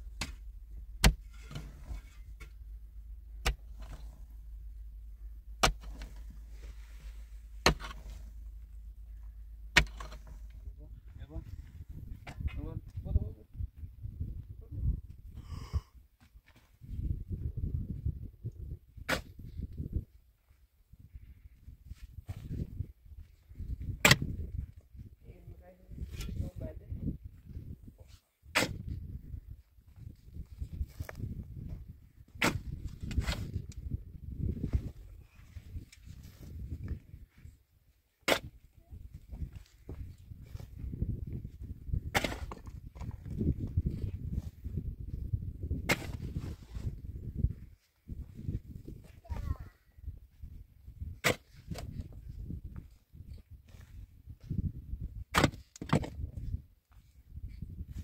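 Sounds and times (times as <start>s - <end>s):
scraping and shifting earth: 0.0s - 13.9s, 16.2s - 58.0s
metal blade striking stony ground: 0.1s - 0.4s, 1.0s - 2.6s, 3.4s - 4.2s, 5.6s - 6.3s, 7.6s - 8.2s, 9.7s - 10.4s, 24.0s - 24.3s, 38.2s - 38.5s, 42.1s - 42.7s, 45.8s - 46.2s, 51.2s - 51.8s, 55.3s - 56.1s.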